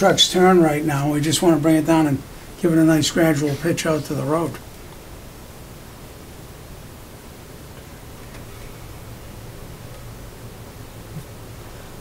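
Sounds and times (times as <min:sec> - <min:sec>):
faint low hum: 0:00.0 - 0:12.0
steady hiss: 0:00.0 - 0:12.0.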